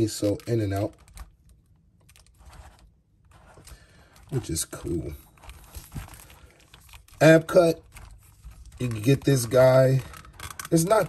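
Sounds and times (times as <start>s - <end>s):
plastic toy clicks and rustles: 6.8s - 11.0s.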